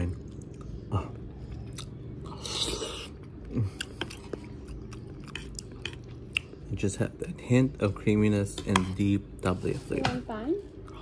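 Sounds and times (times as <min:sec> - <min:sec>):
steady low hum: 0:00.0 - 0:11.0
chewing mouth sounds: 0:00.1 - 0:06.8.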